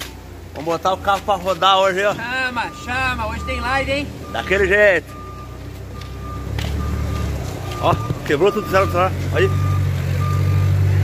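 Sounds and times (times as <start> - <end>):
low engine rumble: 0.0 - 11.0
reversing alarm beeping: 2.2 - 11.0.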